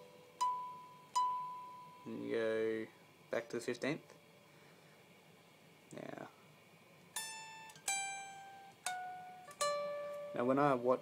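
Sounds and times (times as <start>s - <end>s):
electric guitar picked notes: 7.2s - 10.6s.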